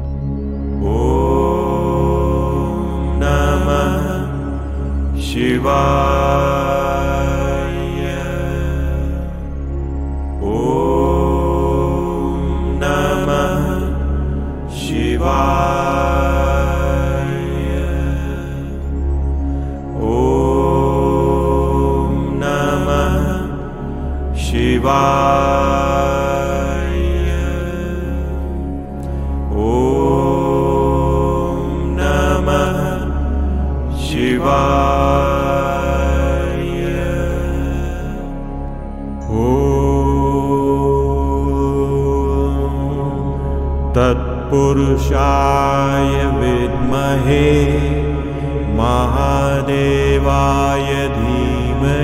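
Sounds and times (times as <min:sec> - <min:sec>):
low drone: 0:00.0 - 0:52.0
man chanting a mantra: 0:00.7 - 0:09.7, 0:10.4 - 0:28.6, 0:29.5 - 0:38.4, 0:39.1 - 0:52.0.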